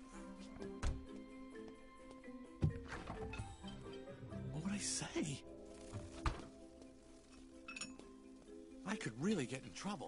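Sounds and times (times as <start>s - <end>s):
quiet background music: 0.0s - 10.0s
glassy clink: 7.7s - 8.0s.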